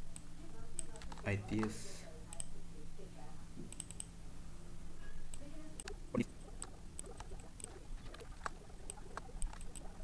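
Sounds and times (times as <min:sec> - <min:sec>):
computer mouse and keyboard clicks: 0:00.8 - 0:02.6, 0:03.7 - 0:04.1, 0:05.3 - 0:09.9.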